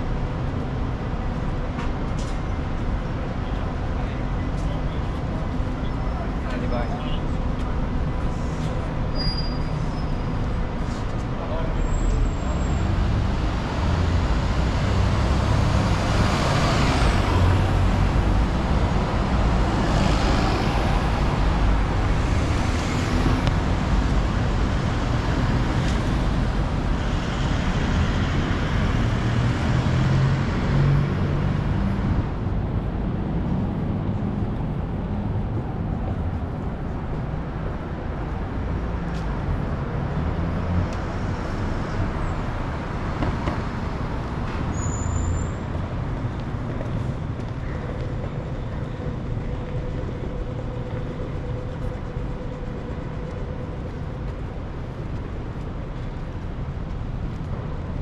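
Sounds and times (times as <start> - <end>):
cars and buses driving past: 0.0 - 58.0.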